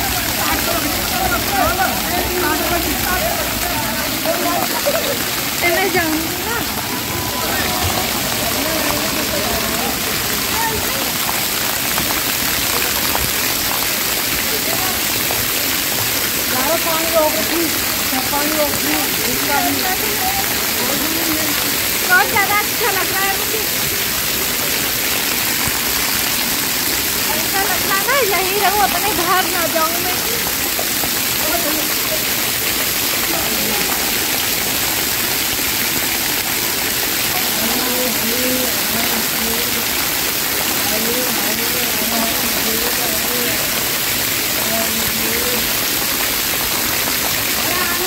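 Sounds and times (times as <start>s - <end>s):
faint voices: 0.0s - 48.0s
water splashing from fountain: 0.0s - 48.0s.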